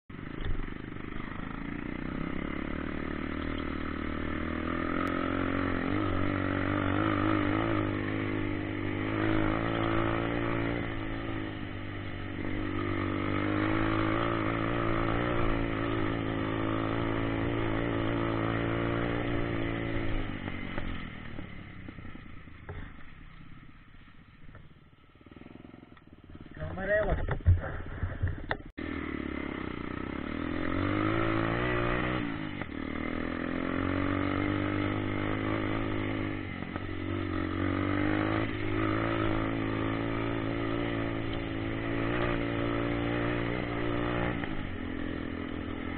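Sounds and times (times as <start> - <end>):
dirt bike engine revving: 0.1 - 45.9.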